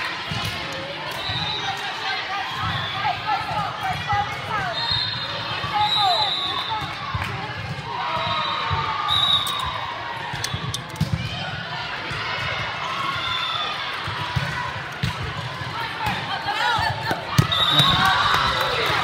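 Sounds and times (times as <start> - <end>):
spectator chatter: 0.0 - 19.0.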